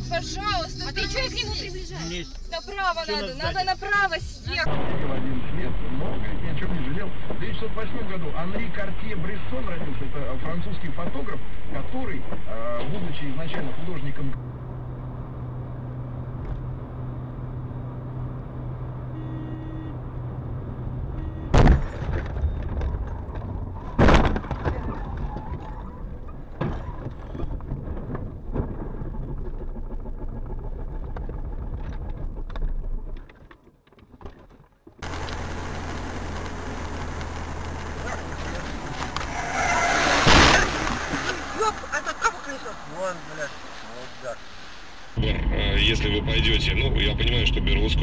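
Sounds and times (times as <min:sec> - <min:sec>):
car cabin road and engine noise: 0:00.0 - 0:48.0
steady road noise: 0:00.0 - 0:48.0
loud bangs: 0:37.8 - 0:42.4.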